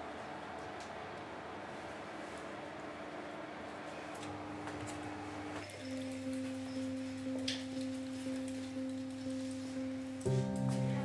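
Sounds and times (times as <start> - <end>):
low electronic tone: 5.6 - 11.0.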